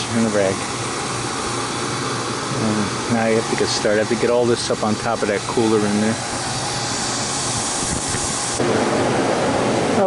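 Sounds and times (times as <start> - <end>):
condensing unit fans whirring: 0.0 - 10.0
steady hiss: 0.0 - 10.0.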